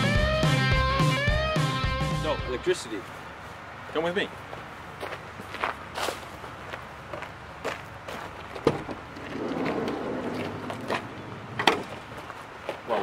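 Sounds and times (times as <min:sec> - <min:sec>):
footsteps on gravel: 0:03.0 - 0:13.0.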